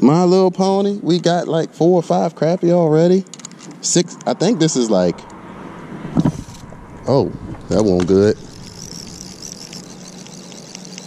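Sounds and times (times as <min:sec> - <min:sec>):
car rumbling over bridge: 0:05.0 - 0:10.0.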